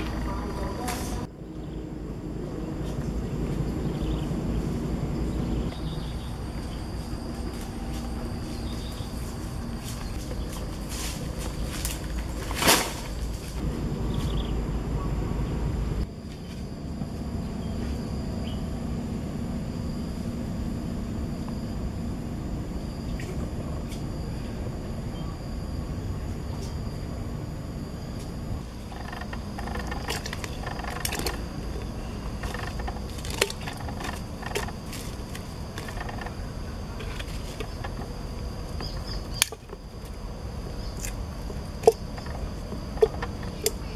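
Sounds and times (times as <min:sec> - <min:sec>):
high insect drone: 0:00.0 - 0:43.9
low rumble: 0:00.0 - 0:43.9
dry branches knocking and snapping: 0:09.8 - 0:13.6, 0:32.4 - 0:36.3.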